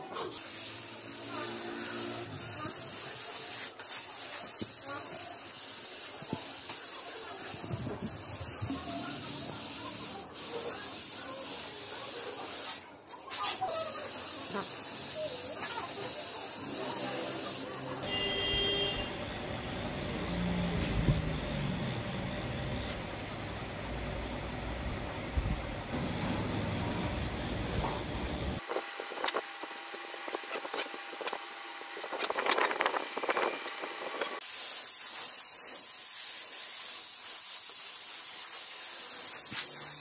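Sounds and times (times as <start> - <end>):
spray gun hissing: 0.3 - 12.8, 13.6 - 18.3, 28.2 - 40.0.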